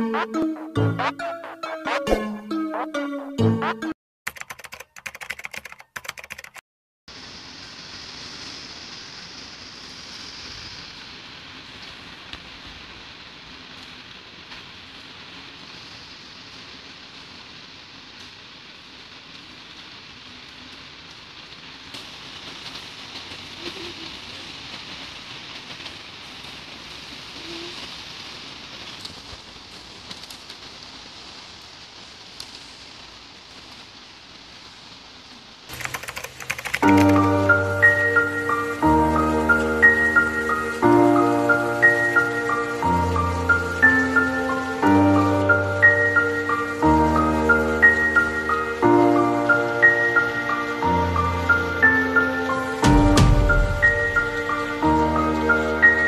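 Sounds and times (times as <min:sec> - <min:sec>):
heavy rain falling: 0:00.0 - 0:03.8, 0:07.1 - 0:56.0
title card sound: 0:00.0 - 0:06.6, 0:35.7 - 0:37.4.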